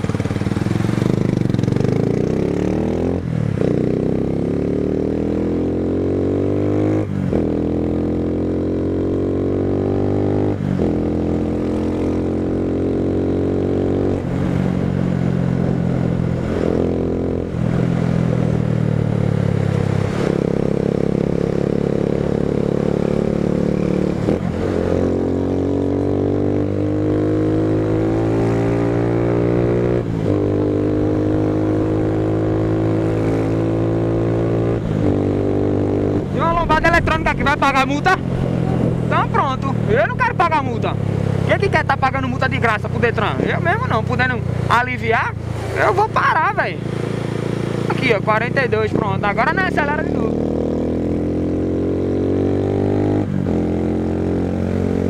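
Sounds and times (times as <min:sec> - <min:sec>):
motorcycle engine accelerating: 0:00.0 - 0:55.0
low wind rumble: 0:10.5 - 0:49.6.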